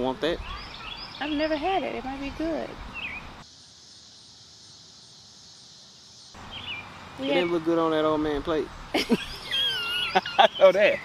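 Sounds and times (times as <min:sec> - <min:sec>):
bird chirp: 0:00.0 - 0:08.1, 0:08.7 - 0:11.0
high insect buzz: 0:01.2 - 0:07.8.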